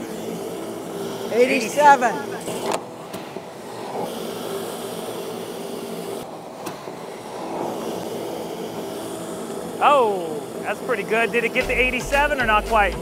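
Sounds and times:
blower motor hum: 0.0 - 13.0
rushing air: 0.0 - 13.0.

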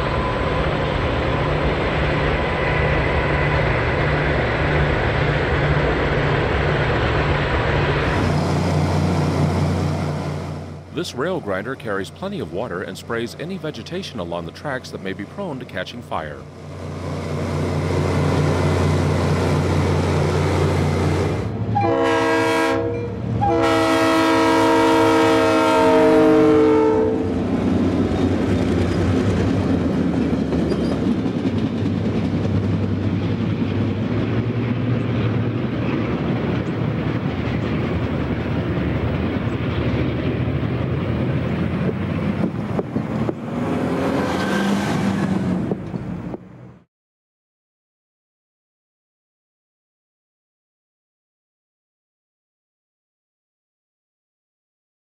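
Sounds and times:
freight train rolling past: 0.0 - 46.8
locomotive horn blasts: 21.7 - 27.4.

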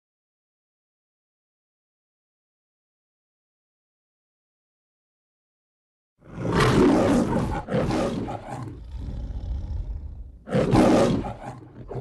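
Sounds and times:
lion growling: 6.2 - 12.0
lion roaring: 6.2 - 12.0.

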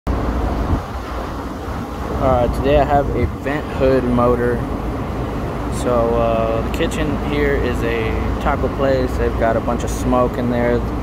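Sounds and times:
low rumble with hiss: 0.1 - 11.0.

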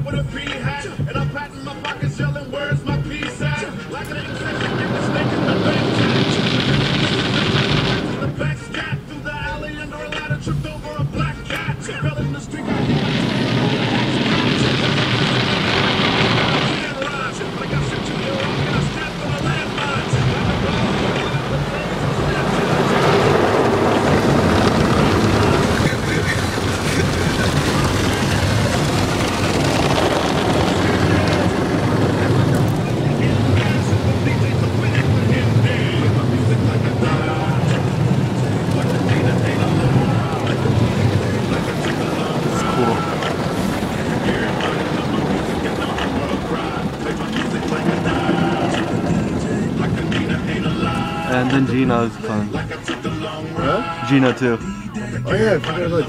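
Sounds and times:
water spraying on windshield: 0.0 - 54.6
music with rapped vocals: 0.0 - 56.0
cloth strips sweeping over car: 12.6 - 51.3.

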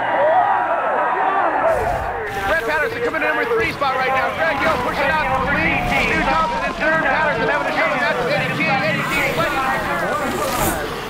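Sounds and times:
man commentating: 1.7 - 11.0.

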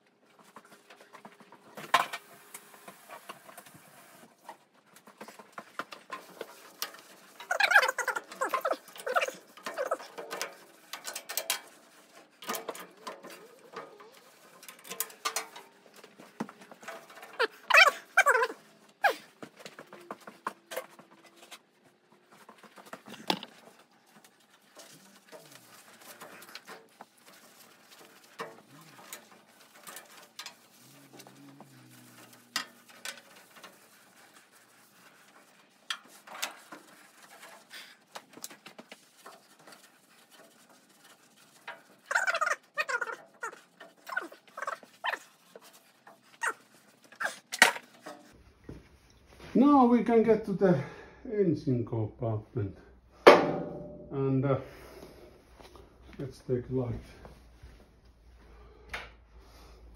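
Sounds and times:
rag rubbing on metal panel: 7.0 - 10.2, 27.0 - 48.1.

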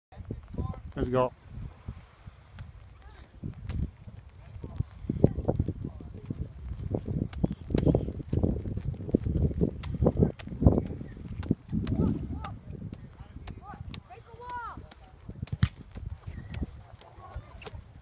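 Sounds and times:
balls slapping into hands: 2.4 - 4.8, 5.7 - 18.0.

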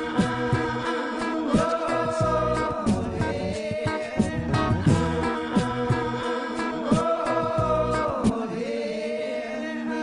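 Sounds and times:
choir-like vocal harmonies: 0.0 - 10.0.

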